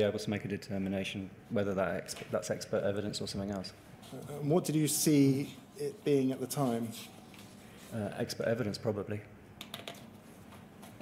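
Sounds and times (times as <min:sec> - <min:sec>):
computer keyboard keystrokes: 0:09.6 - 0:10.1.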